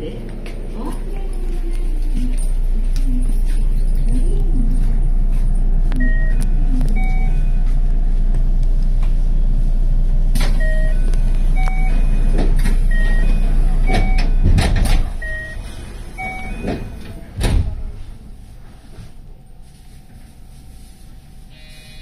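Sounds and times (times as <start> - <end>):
low equipment rumble: 0.0 - 21.5
short electronic beeps: 6.0 - 7.6, 15.2 - 16.9.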